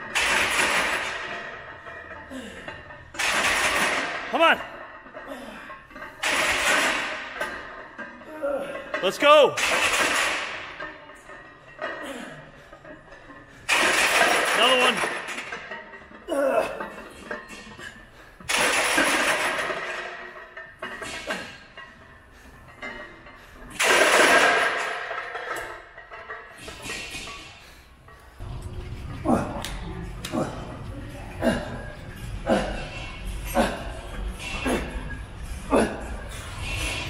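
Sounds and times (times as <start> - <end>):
man grunting loudly: 29.2 - 29.6, 35.7 - 36.2.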